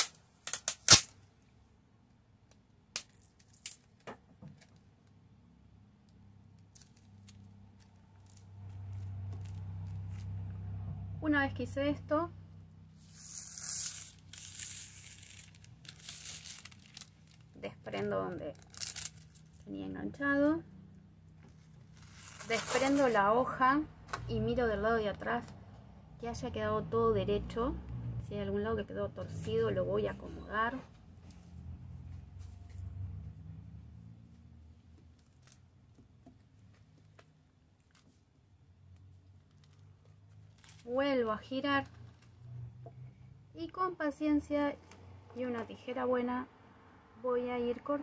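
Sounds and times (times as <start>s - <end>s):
plastic tape crinkling: 0.0s - 1.2s, 2.9s - 5.2s, 6.5s - 10.4s, 13.0s - 19.7s, 21.4s - 23.3s, 35.0s - 36.0s, 36.6s - 38.3s, 38.9s - 41.0s
cord rustling on cloth: 6.4s - 10.5s, 12.9s - 19.8s, 21.4s - 23.4s, 34.1s - 42.5s.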